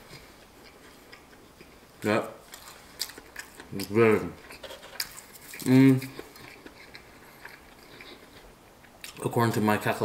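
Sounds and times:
person chewing crispy food: 0.0s - 9.3s.

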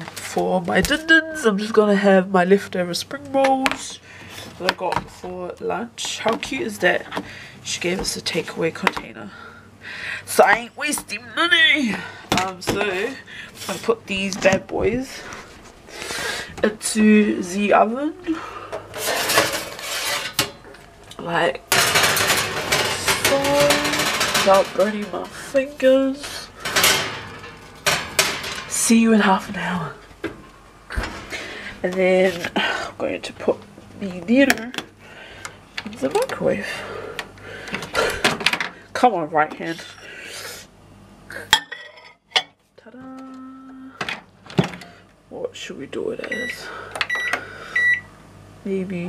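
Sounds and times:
microwave electric hum: 0.0s - 49.0s
ceramic plate scraping: 18.9s - 20.6s
metal tray knocks and scrapes: 18.9s - 20.6s, 21.7s - 25.7s, 26.6s - 28.9s.

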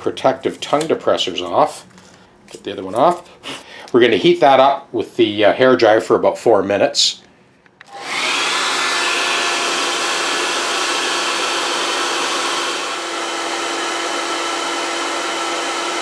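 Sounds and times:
hair dryer blowing: 7.8s - 16.0s.

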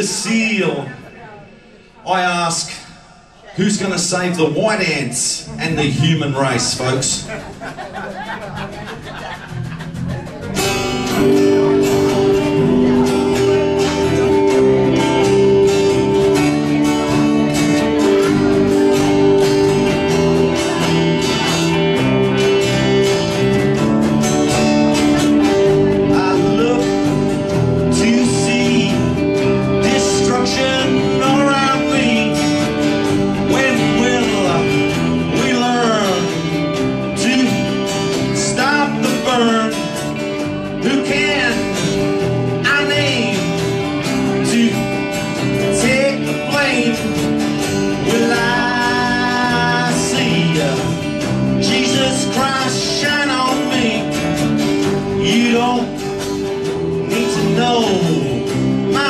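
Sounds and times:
live country band playing: 0.0s - 59.0s.

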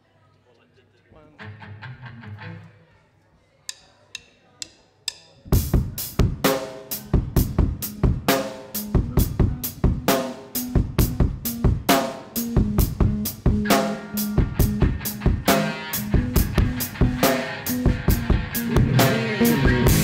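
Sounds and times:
drumstick count-in clicks: 3.7s - 5.3s
live rock band: 5.5s - 20.0s.

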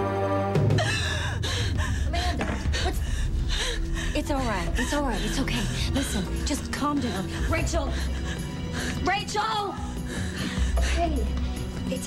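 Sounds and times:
woman gasping and panting: 0.8s - 6.4s.

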